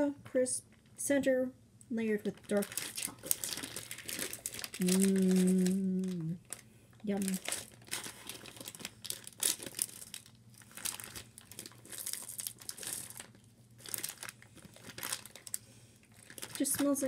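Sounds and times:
plastic candy bag crinkling: 0:02.1 - 0:17.0.

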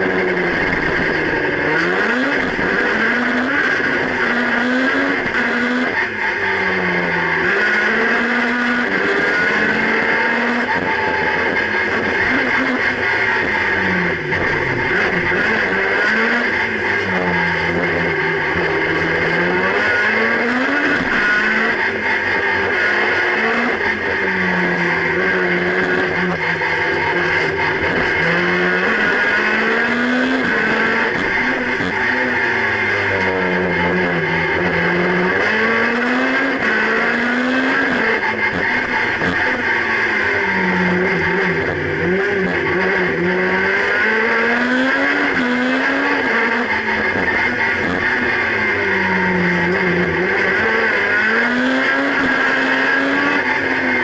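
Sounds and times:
race car engine revving: 0:00.0 - 0:54.0.

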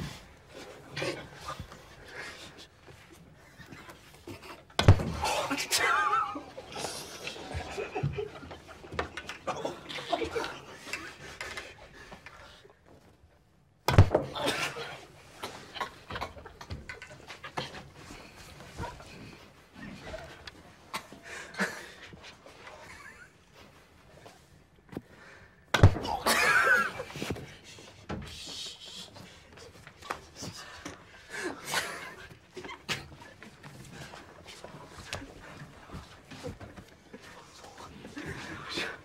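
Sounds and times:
stifled laughter: 0:05.2 - 0:11.8, 0:19.9 - 0:24.4, 0:26.1 - 0:27.3, 0:31.3 - 0:33.1.

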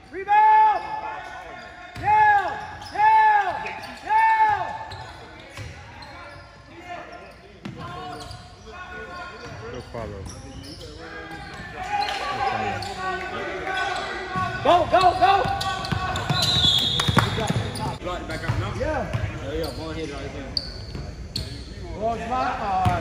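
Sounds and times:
players' voices: 0:00.0 - 0:23.0
shoe squeals: 0:00.3 - 0:21.9.

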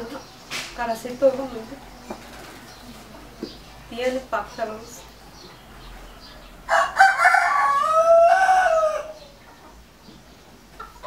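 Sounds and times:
rooster crowing: 0:06.7 - 0:09.4.

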